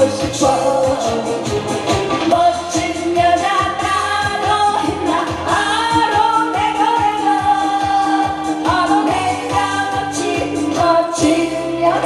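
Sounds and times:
woman singing into a microphone: 0:00.0 - 0:01.6, 0:02.2 - 0:12.0
backing music with dance beat: 0:00.0 - 0:12.0.

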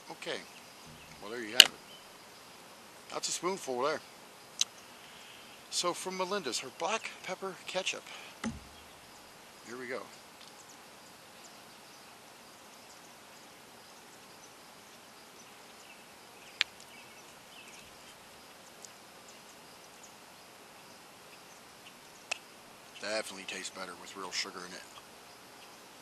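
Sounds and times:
faint bird chirps: 0:00.0 - 0:26.0
sharp click: 0:08.4 - 0:08.9.

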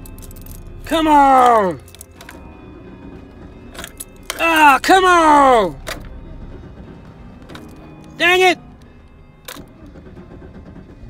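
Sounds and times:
car starter cranking engine: 0:00.0 - 0:11.0.

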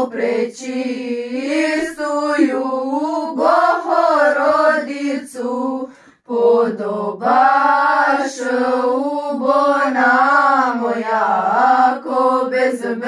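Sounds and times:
women singing unaccompanied: 0:00.0 - 0:13.0.

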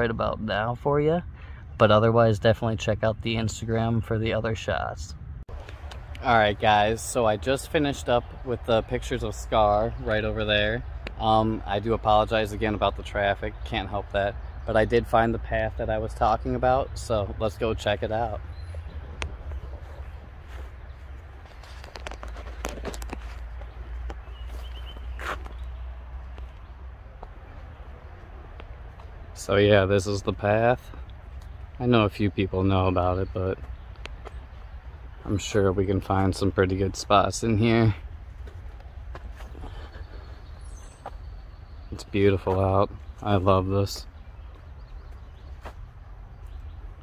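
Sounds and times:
distant road traffic rumble: 0:00.0 - 0:47.0
footsteps on dirt trail: 0:18.2 - 0:29.4, 0:30.3 - 0:31.8, 0:33.6 - 0:36.8, 0:37.7 - 0:46.8.

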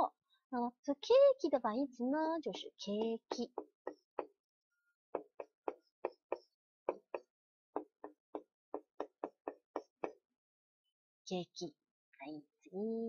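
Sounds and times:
marker squeaking on whiteboard: 0:05.2 - 0:07.2, 0:07.8 - 0:10.2.

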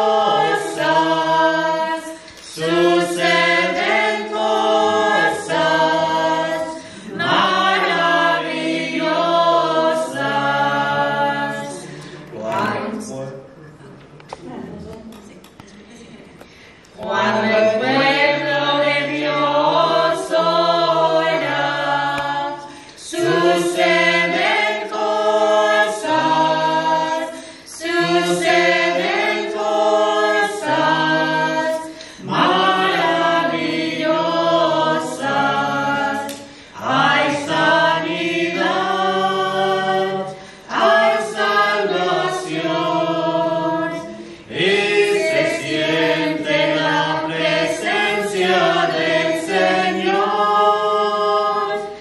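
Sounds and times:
vocal group singing a hymn: 0:00.0 - 0:13.6, 0:16.4 - 0:52.0.

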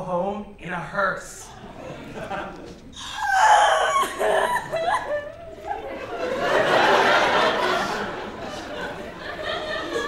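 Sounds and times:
woman wailing sobs: 0:03.0 - 0:05.8.

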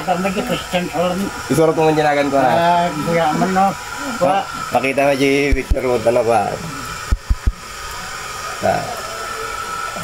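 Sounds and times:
steady hiss: 0:00.0 - 0:10.0.

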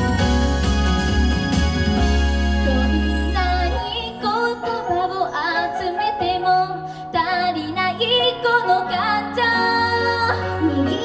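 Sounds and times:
light backing track: 0:00.0 - 0:11.0
girl singing pop song: 0:02.6 - 0:11.0.

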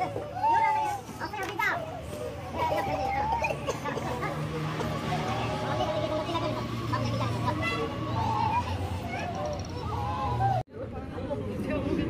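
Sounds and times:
women crying and wailing: 0:02.0 - 0:10.6.

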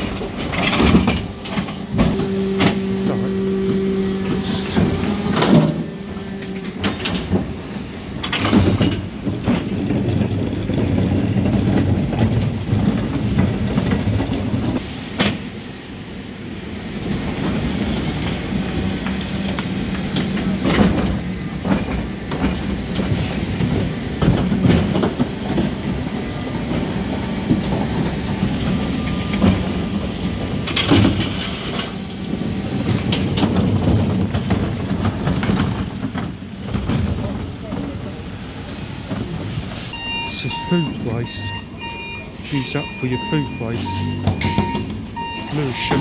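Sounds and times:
diesel truck engine running: 0:00.0 - 0:46.0
hydraulics working: 0:00.0 - 0:46.0
metal bin clanking: 0:03.7 - 0:14.8.

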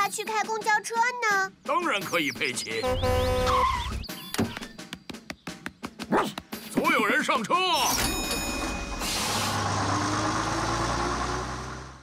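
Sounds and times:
bus engine humming: 0:08.3 - 0:12.0.

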